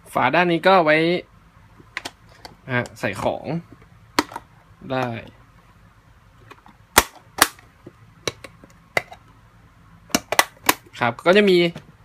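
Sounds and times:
plastic box clicks and taps: 0:06.5 - 0:09.2.

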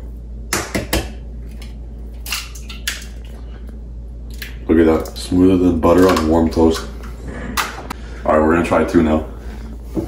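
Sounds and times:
eggshell cracking: 0:01.6 - 0:03.4.

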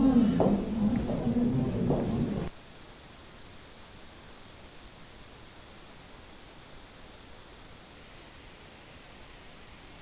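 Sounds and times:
faint steady hiss: 0:00.0 - 0:10.0
low room sound: 0:00.0 - 0:10.0.

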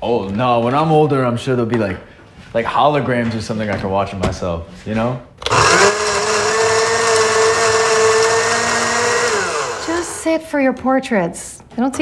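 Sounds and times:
blender running: 0:05.4 - 0:10.3.

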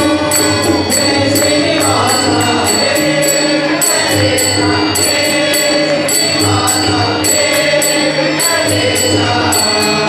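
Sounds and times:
harmonium: 0:00.0 - 0:10.0
men singing a devotional chant: 0:00.0 - 0:10.0
ringing metallic beat: 0:00.0 - 0:10.0
tabla: 0:00.0 - 0:10.0.

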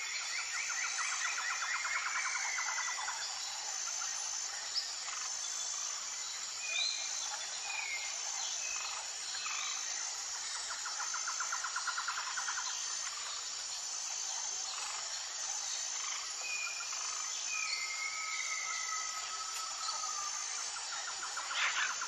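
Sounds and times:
insects: 0:00.0 - 0:22.0.

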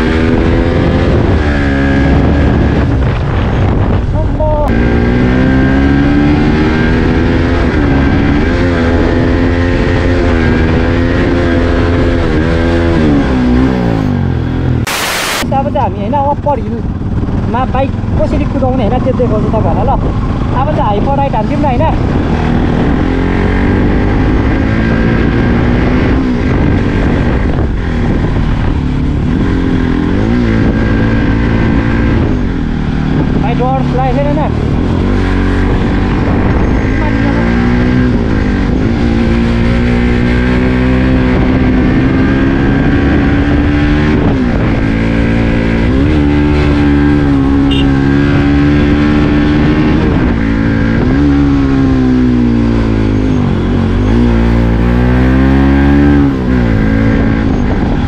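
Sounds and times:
motorcycle engine revving uphill: 0:00.0 - 0:58.0.

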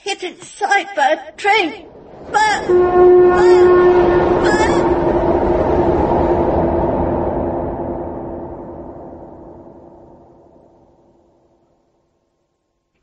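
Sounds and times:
train rumble with droning tone: 0:01.4 - 0:11.2
brief warbling cry: 0:02.3 - 0:05.6.

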